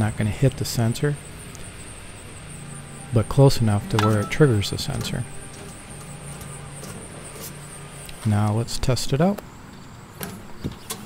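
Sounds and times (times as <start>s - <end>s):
steady low hum: 0.0s - 10.2s
high-pitched tone: 4.0s - 5.2s.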